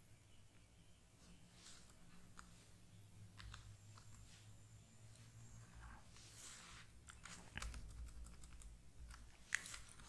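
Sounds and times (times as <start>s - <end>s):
keyboard typing: 7.0s - 10.0s.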